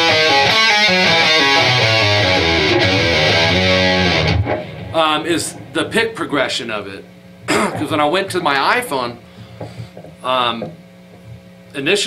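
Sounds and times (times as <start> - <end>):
country electric guitar riff: 0.0 - 10.8.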